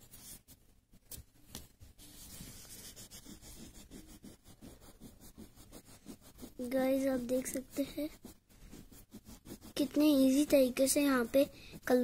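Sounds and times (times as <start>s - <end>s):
pencil scratching on paper: 0.0s - 0.5s, 2.0s - 12.0s.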